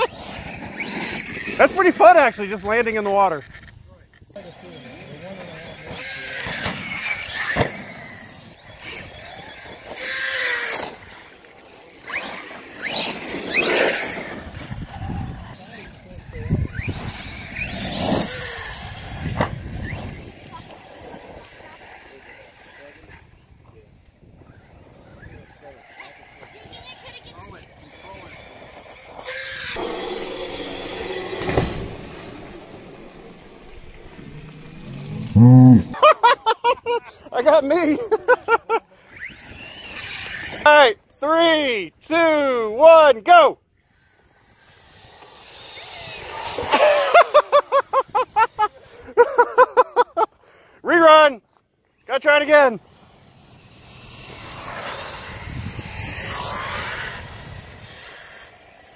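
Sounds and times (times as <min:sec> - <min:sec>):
electric rc truck motors whining: 0:00.0 - 0:41.2, 0:43.6 - 0:50.8, 0:51.5 - 0:58.9
tyres on loose dirt: 0:00.0 - 0:41.2, 0:43.8 - 0:58.9.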